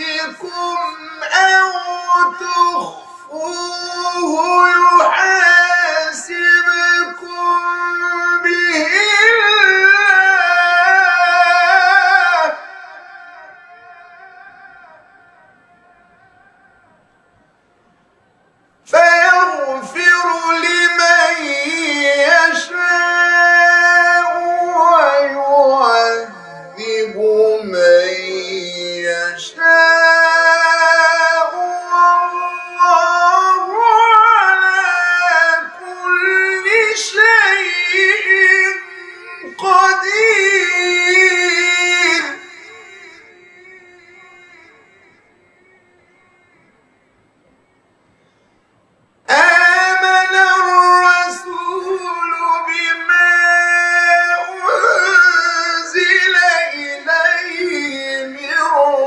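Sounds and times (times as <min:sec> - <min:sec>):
man reciting in melodic chant: 0:00.0 - 0:16.8, 0:18.8 - 0:47.0, 0:49.2 - 0:59.0.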